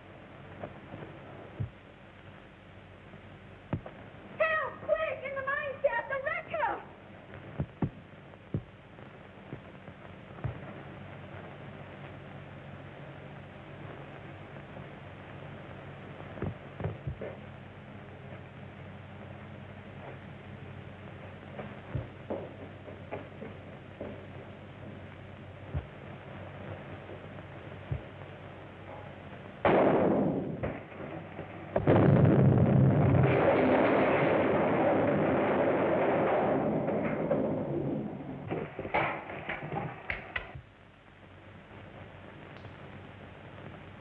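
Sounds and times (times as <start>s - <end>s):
steady faint hiss: 0.0s - 44.0s
sharp cracks: 28.8s - 40.7s
sudden bang: 29.6s - 31.2s, 31.8s - 40.0s
dynamite blast rumbling: 29.6s - 40.1s.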